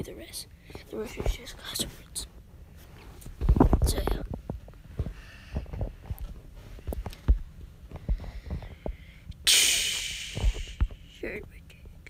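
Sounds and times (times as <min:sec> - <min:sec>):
microphone handling thumps: 0:03.3 - 0:09.0, 0:10.2 - 0:11.0.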